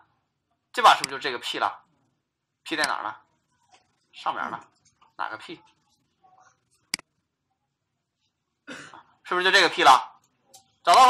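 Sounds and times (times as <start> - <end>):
man coughing: 8.6 - 9.1.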